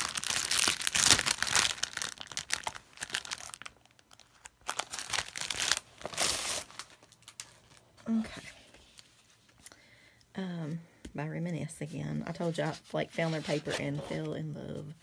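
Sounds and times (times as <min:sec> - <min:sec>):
plastic shrink-wrap crinkling: 0:00.0 - 0:08.2.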